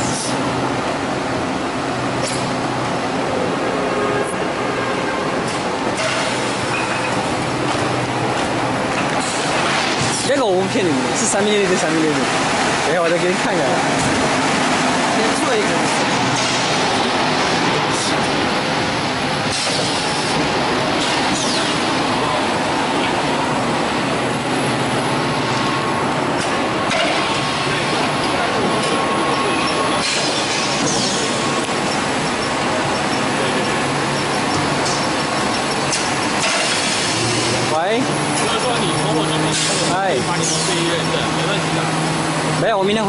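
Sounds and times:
production line machinery din: 0:00.0 - 0:43.0.

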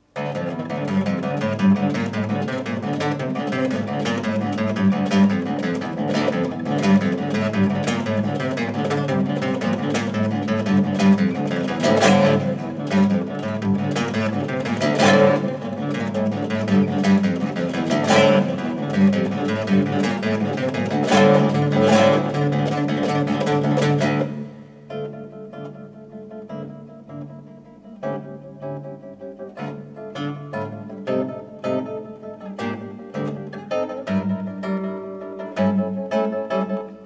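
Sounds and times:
classical guitar fingerstyle: 0:00.0 - 0:37.0.

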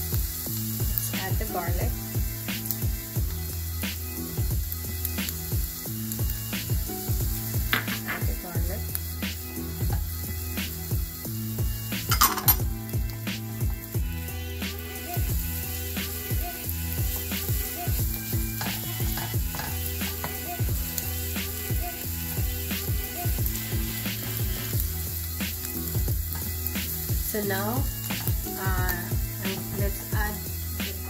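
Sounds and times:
onion sizzling in oil: 0:00.0 - 0:31.0
spatula scraping and tapping pan: 0:07.6 - 0:08.4, 0:18.4 - 0:20.5, 0:28.0 - 0:28.5.

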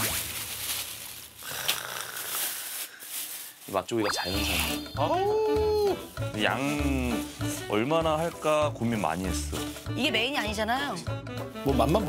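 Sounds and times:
plastic bags rustling: 0:00.0 - 0:08.0
steady high tone: 0:04.0 - 0:05.5.

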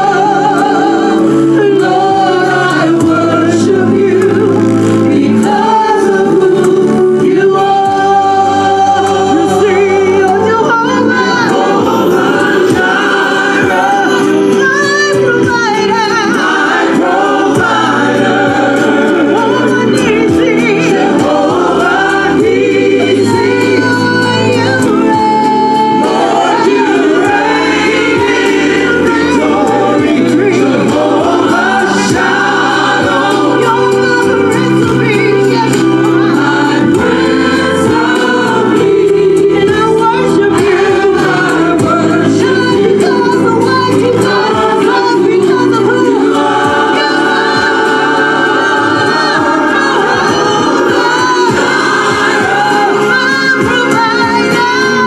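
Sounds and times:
choir singing into microphones: 0:00.0 - 0:55.0
instrumental accompaniment chords: 0:00.0 - 0:55.0.

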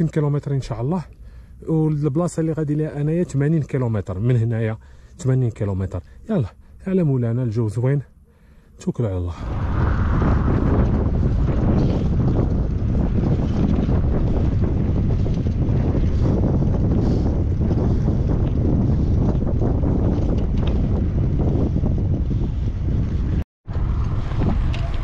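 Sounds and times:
wind buffeting microphone: 0:09.3 - 0:25.0.

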